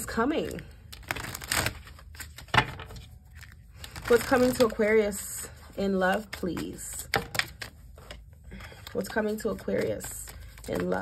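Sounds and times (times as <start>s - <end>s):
cards clicking while shuffled: 5.9s - 11.0s.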